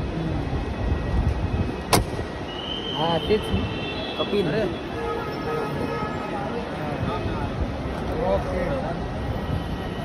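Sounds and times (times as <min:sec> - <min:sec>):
traffic rumble: 0:00.0 - 0:10.0
crowd noise: 0:01.9 - 0:10.0.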